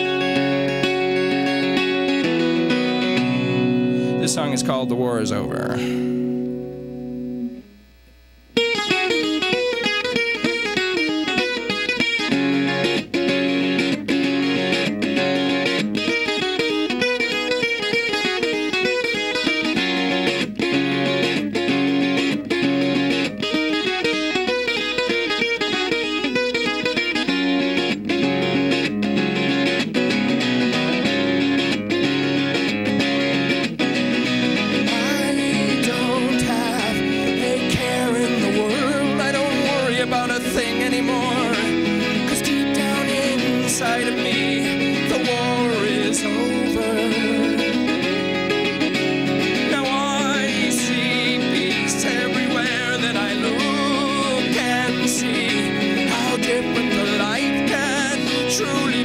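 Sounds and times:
acoustic guitar chord ringing: 0.0 - 7.8, 8.5 - 59.0
acoustic guitar picking: 0.0 - 7.8, 8.5 - 59.0.

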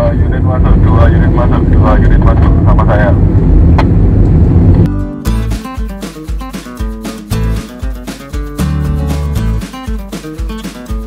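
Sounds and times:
car road and engine noise: 0.0 - 5.0
strummed acoustic guitar music: 4.9 - 11.0.

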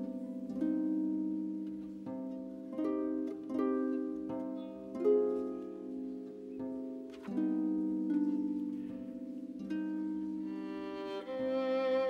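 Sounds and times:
plucked harp notes: 0.0 - 12.0.

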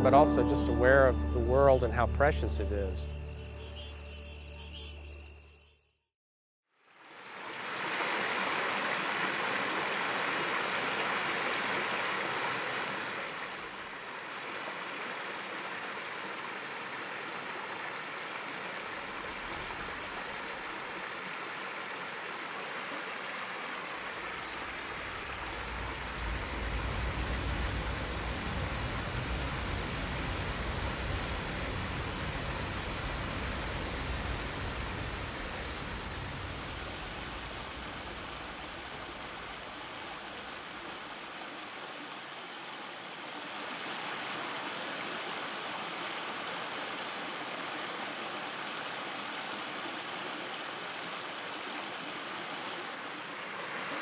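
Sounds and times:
rushing water: 6.8 - 54.0
deep rumble: 24.5 - 39.6.

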